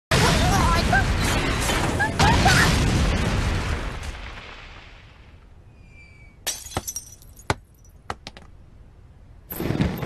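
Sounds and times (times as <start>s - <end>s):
window glass shattering: 6.5s - 7.6s
falling glass shards clinking: 6.5s - 7.9s.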